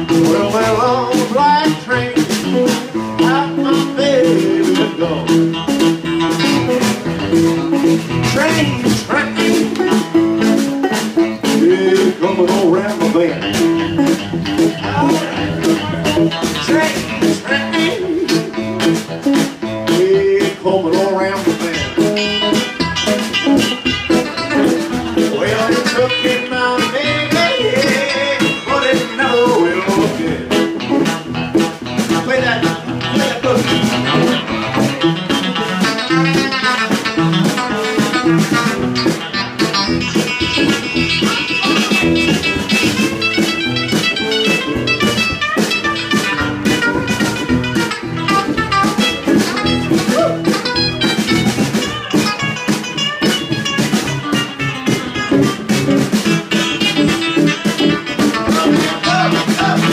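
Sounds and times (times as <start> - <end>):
electric guitar lead lines: 0.0 - 59.9
strummed acoustic guitar: 0.0 - 59.9
snare drum beat: 21.0 - 59.9.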